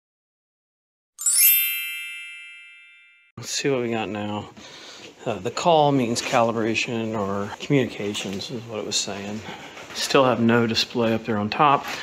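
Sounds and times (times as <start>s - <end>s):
bright bell-like ding: 1.2s - 3.4s.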